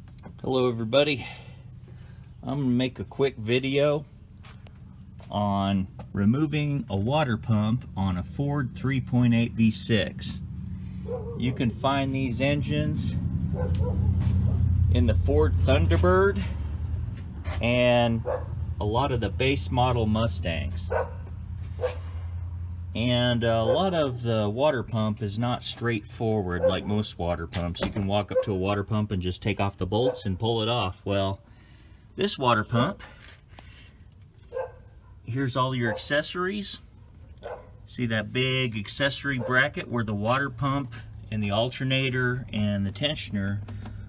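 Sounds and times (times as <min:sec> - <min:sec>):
low mechanical hum: 0:00.0 - 0:35.8.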